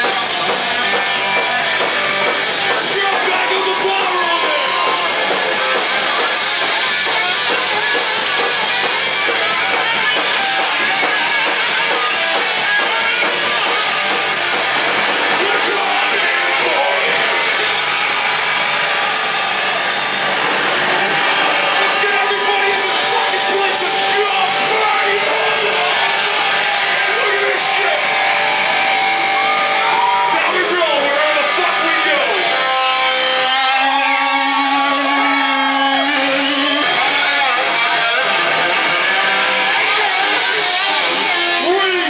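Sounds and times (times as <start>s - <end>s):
loud distorted rock band: 0.0s - 42.0s.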